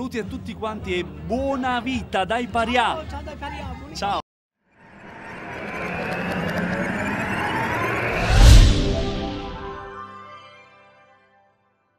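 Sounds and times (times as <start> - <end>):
whooshing riser effect: 4.7 - 10.1.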